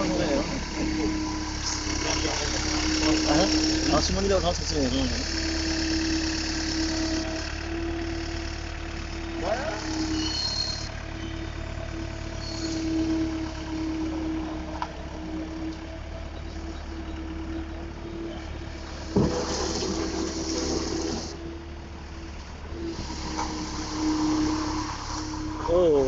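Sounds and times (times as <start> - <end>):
steady tone: 0.0 - 8.1, 22.8 - 26.0
diesel engine running: 0.0 - 26.0.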